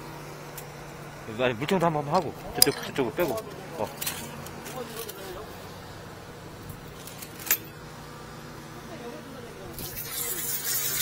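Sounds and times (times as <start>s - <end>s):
low machine hum: 0.0s - 11.0s
high-pressure water nozzle spraying: 9.8s - 11.0s.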